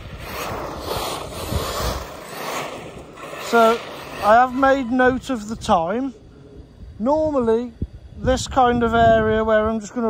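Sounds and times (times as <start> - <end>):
rc car tyres and drivetrain rushing: 0.0 - 10.0
wind buffeting microphone: 0.0 - 10.0.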